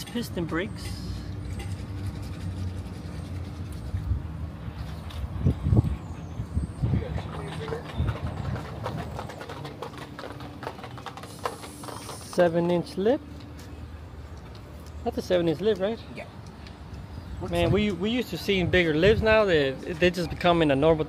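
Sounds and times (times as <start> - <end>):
low outdoor hum: 0.0 - 21.0.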